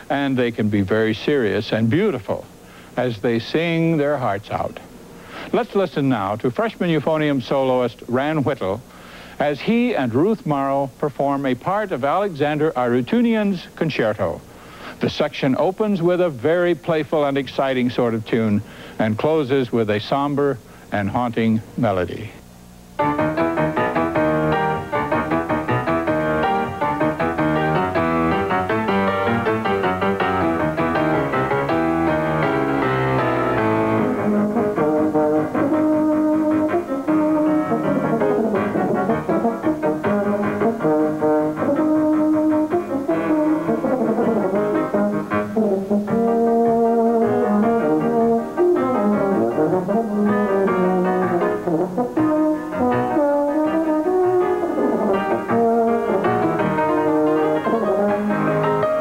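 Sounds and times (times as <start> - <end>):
piano accompaniment: 22.9 - 59.0
euphonium melody: 23.0 - 59.0.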